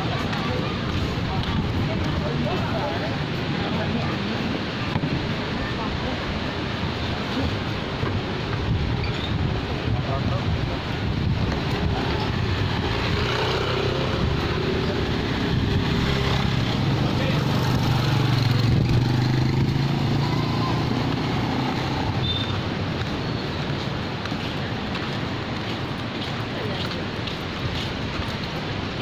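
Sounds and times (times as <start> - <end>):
motor vehicle engine: 6.6 - 29.0.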